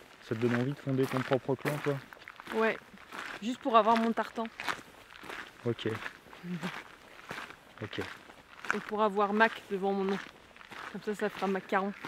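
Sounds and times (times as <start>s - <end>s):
footsteps walking: 0.0s - 12.0s.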